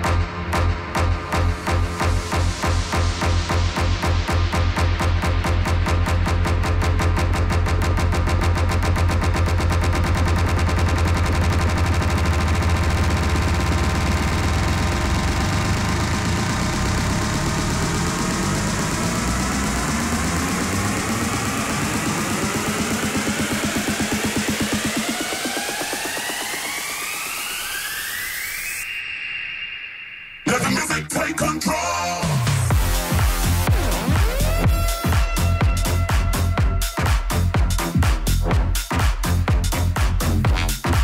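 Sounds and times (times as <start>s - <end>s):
synth sweeps rising in pitch: 0.0s - 31.1s, 31.7s - 38.6s
electronic dance music: 0.0s - 41.0s.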